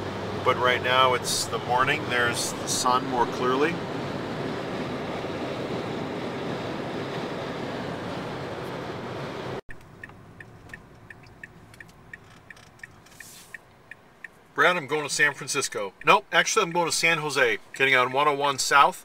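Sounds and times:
road and engine noise: 0.0 - 19.0
turn-signal relay ticking: 9.7 - 19.0.

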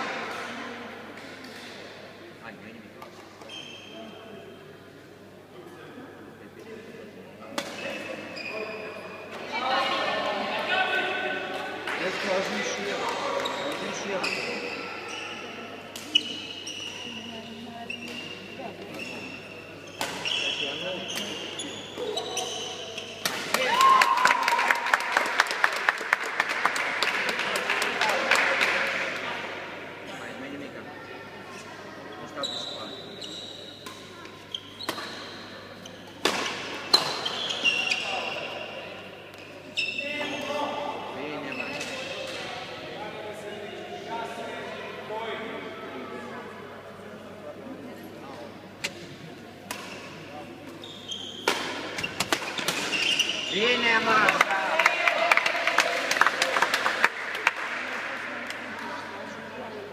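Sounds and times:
shoes squeaking on court floor: 3.4 - 4.2, 7.6 - 9.2, 13.1 - 23.3, 31.5 - 38.7, 39.3 - 40.7, 41.3 - 42.3, 49.8 - 54.0.

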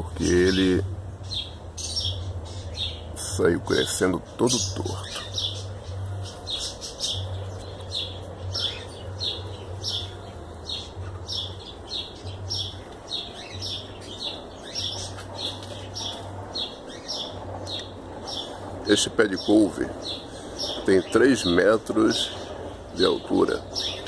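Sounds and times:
bird chirping: 0.0 - 24.0.

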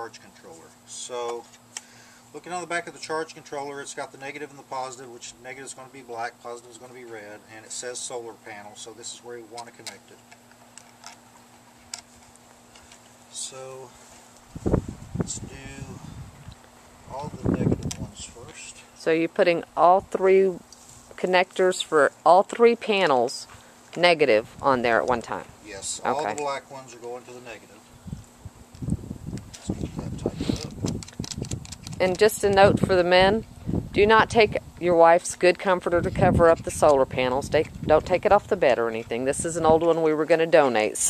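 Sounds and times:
wire connectors clicking: 30.6 - 32.6.

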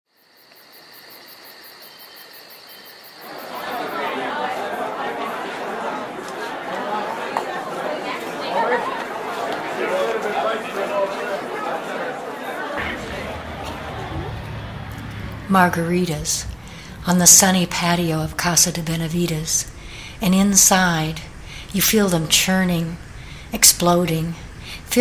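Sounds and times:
crowd chatter: 3.2 - 25.0.

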